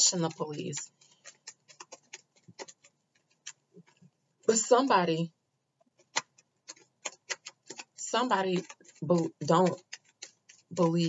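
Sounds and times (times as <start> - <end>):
cards being shuffled: 6.0 - 11.0.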